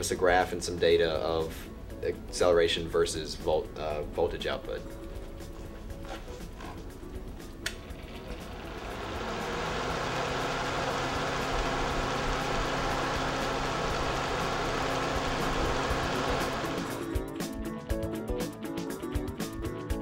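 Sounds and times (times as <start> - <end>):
electric fan humming: 6.4 - 17.2
fan switch click: 7.6 - 7.8.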